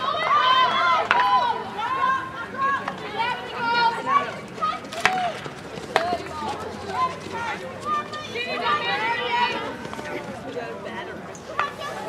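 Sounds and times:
hockey stick striking ball: 5.0s - 5.3s.

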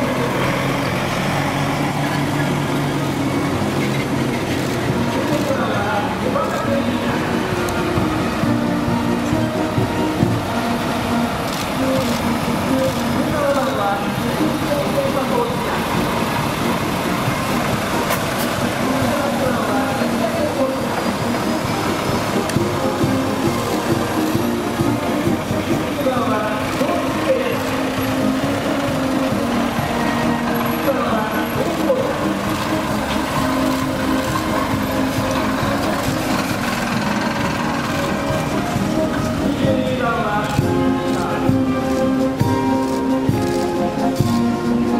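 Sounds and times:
vehicles driving slowly past: 0.0s - 44.9s
voices: 0.0s - 44.9s.

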